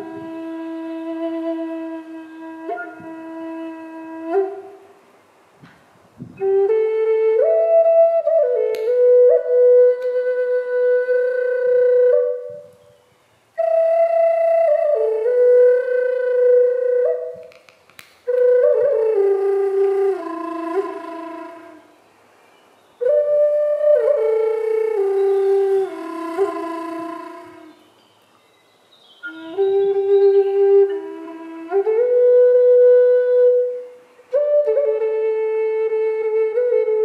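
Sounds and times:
wooden flute playing slowly: 0:00.0 - 0:05.1, 0:06.1 - 0:37.0.

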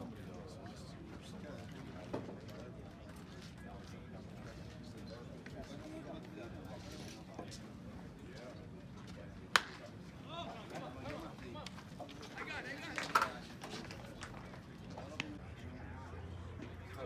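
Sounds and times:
people talking in background: 0:00.0 - 0:17.0
wooden bat hitting baseball: 0:09.5 - 0:09.9.

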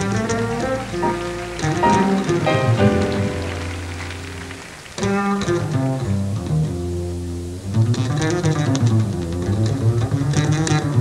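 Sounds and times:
double bass: 0:00.0 - 0:11.0.

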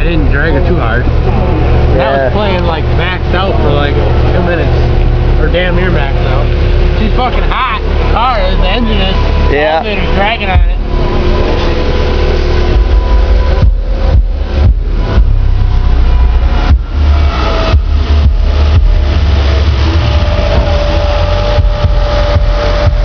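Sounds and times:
bass-heavy music from subwoofers: 0:00.0 - 0:23.0.

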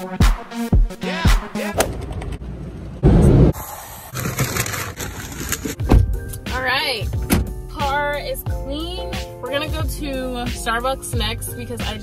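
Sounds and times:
pop music with singing: 0:00.0 - 0:01.9, 0:06.3 - 0:12.0.

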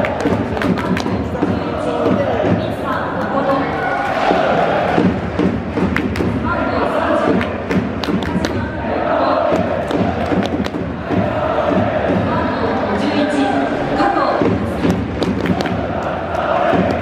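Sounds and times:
crowd din: 0:00.0 - 0:17.0.

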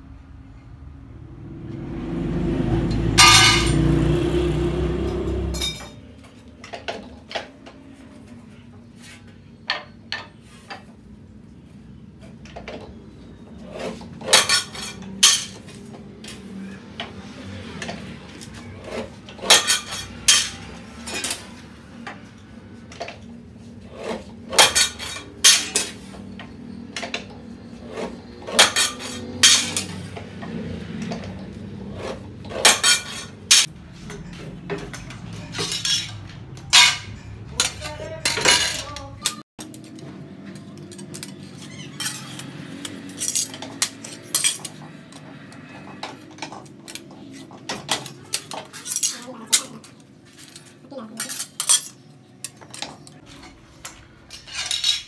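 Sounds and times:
sheet steel pieces clanking: 0:02.9 - 0:04.2, 0:05.0 - 0:07.5, 0:13.8 - 0:15.7, 0:17.8 - 0:21.6, 0:24.0 - 0:30.2, 0:31.9 - 0:40.0, 0:40.6 - 0:45.0, 0:46.0 - 0:55.0.

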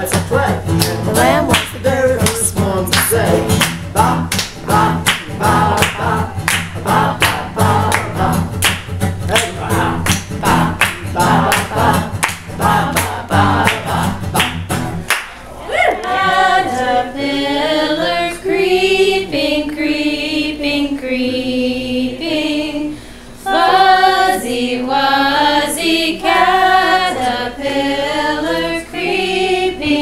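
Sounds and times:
voices singing together: 0:00.0 - 0:14.7, 0:15.5 - 0:30.0
acoustic guitar strumming: 0:00.0 - 0:15.4
hand clapping: 0:00.0 - 0:15.4
woman singing: 0:00.8 - 0:03.6.

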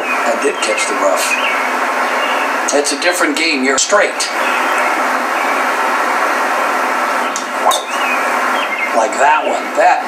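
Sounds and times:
golf club striking ball: 0:07.4 - 0:08.2.

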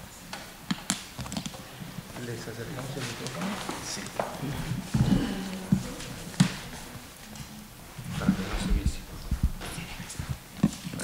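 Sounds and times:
low knocks and thumps: 0:08.1 - 0:10.4.

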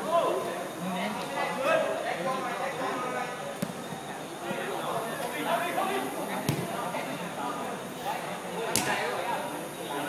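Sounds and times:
football kicked on turf: 0:06.4 - 0:06.8, 0:08.7 - 0:09.1.

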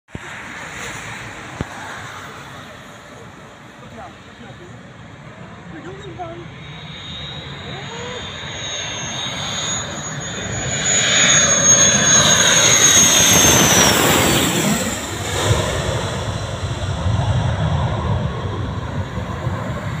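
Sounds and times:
jet roaring overhead: 0:00.1 - 0:20.0
jet whine dropping in pitch: 0:05.7 - 0:20.0.

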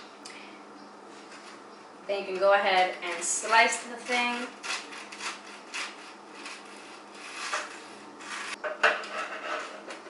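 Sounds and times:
knife sawing through toasted bread: 0:03.1 - 0:08.6.

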